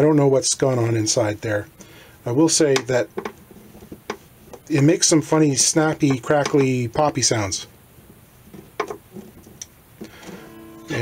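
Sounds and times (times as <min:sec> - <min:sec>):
plucked guitar note ringing: 0:10.4 - 0:11.0.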